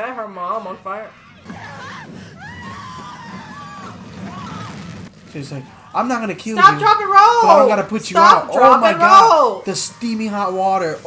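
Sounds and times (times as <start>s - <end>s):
people struggling: 0.5s - 11.0s.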